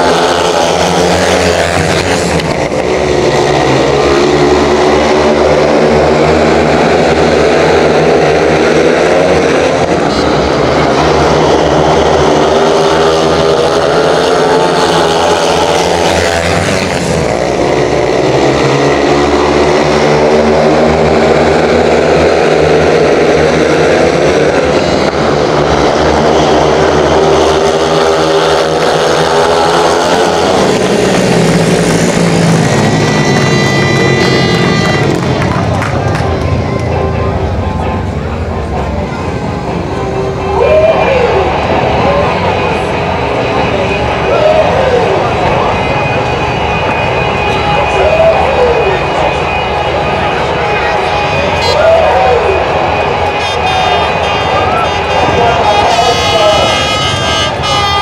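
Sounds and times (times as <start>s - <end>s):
motorcycle engines racing: 0.0s - 58.0s.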